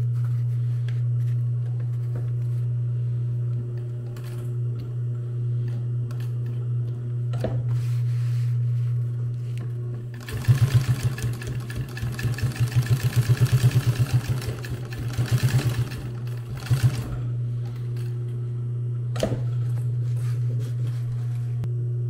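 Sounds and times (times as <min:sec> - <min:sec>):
sewing machine stitching: 0:10.2 - 0:17.2.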